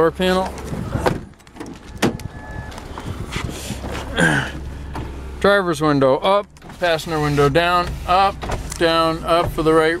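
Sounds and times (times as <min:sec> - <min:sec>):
car door latch click: 0:01.0 - 0:02.8
person coughing: 0:04.1 - 0:04.6.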